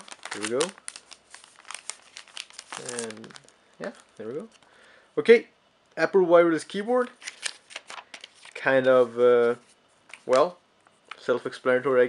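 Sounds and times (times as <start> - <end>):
plastic wrapping crinkling: 0.0 - 4.7, 7.1 - 8.8
person speaking: 2.7 - 4.6.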